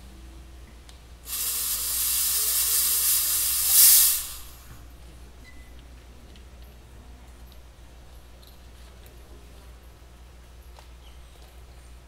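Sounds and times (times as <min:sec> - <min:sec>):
fog machine hissing: 0:01.2 - 0:04.9.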